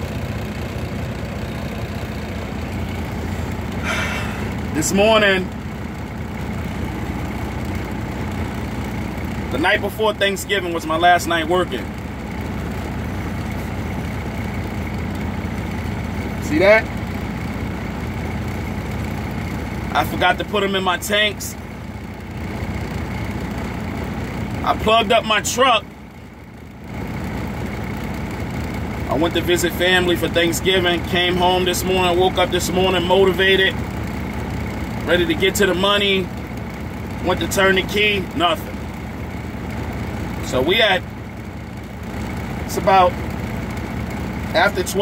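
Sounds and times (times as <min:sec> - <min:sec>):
diesel truck engine idling: 0:00.0 - 0:45.0.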